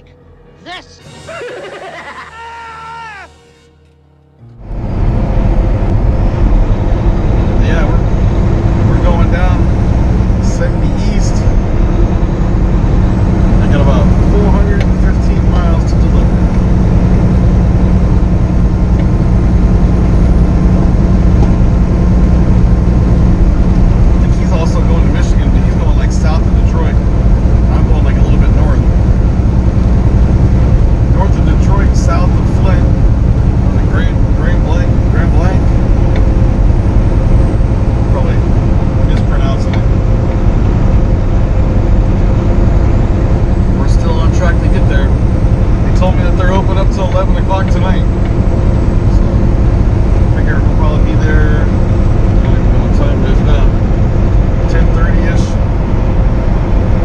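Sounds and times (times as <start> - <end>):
road noise: 0.0 - 57.0
truck engine drone: 0.0 - 57.0.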